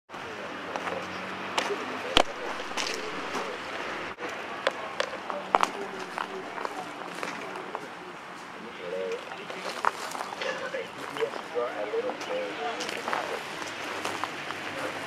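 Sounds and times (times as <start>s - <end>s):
indistinct background voices: 0.1s - 15.0s.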